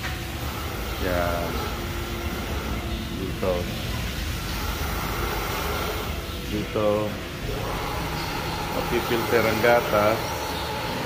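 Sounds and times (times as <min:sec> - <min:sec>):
milking machinery hum and hiss: 0:00.0 - 0:11.0.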